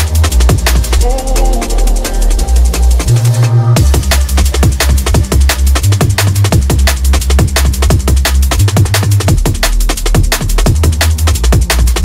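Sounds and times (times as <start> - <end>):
deep sub-bass: 0.0 - 12.0
fast breakbeat drums: 0.0 - 12.0.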